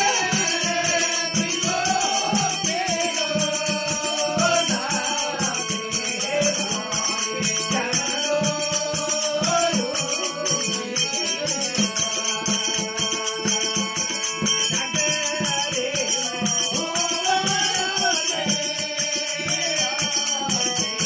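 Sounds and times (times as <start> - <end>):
harmonium: 0.0 - 21.0
man singing: 0.0 - 21.0.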